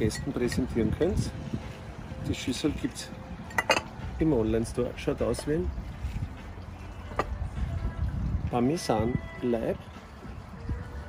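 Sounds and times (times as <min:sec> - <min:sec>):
low wind rumble: 0:00.0 - 0:11.0
ceramic bowl set down: 0:03.5 - 0:04.0.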